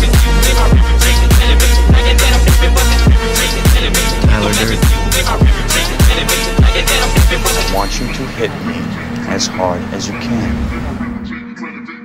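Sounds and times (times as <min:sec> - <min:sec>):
heavy bass beat: 0:00.0 - 0:07.7
man's voice: 0:03.9 - 0:06.1, 0:06.7 - 0:12.0
passing car rumble: 0:07.9 - 0:11.4.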